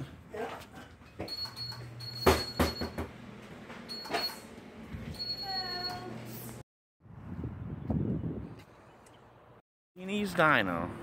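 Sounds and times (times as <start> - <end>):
door clunking and knocking: 2.2 - 3.2.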